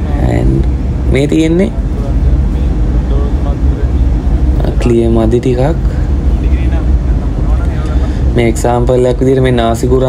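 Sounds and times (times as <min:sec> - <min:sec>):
loud low rumble: 0:00.0 - 0:10.0.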